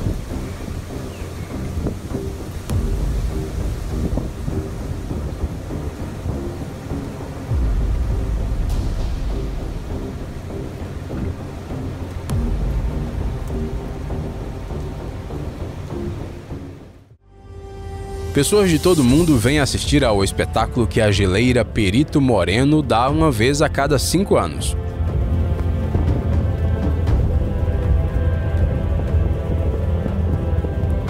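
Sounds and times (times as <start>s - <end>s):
deep thunder rumble: 0.0s - 16.2s
faint background music: 18.1s - 31.0s.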